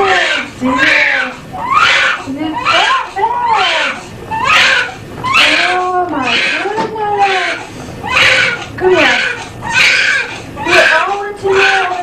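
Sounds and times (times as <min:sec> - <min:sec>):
newborn baby crying: 0:00.0 - 0:12.0.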